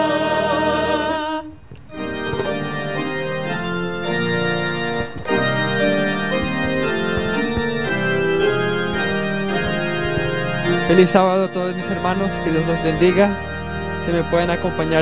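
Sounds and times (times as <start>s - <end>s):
organ keyboard playing held chords: 0.0s - 15.0s.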